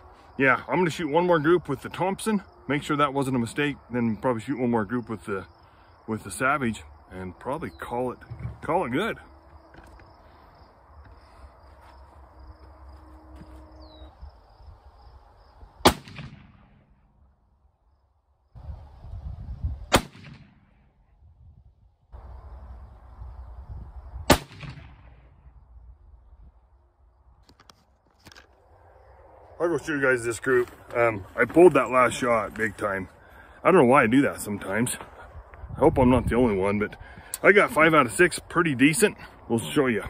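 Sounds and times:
rifle shots with echo: 15.8 - 17.0, 19.9 - 20.6, 24.3 - 25.3.

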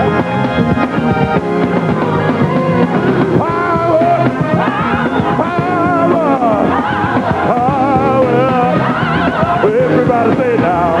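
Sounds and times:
instrumental backing: 0.0 - 11.0
choir singing with vibrato: 1.0 - 11.0.

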